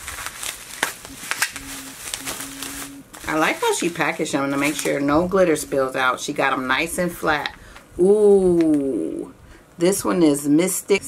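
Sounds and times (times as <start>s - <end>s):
sharp crackles: 0.0s - 5.4s
bubble wrap and plastic bags crinkling: 0.0s - 6.5s
faint steady hum: 0.0s - 11.0s.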